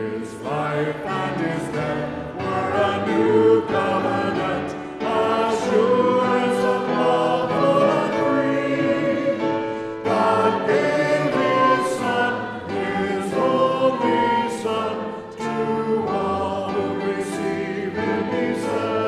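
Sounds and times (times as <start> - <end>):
many voices singing a hymn: 0.0 - 19.0.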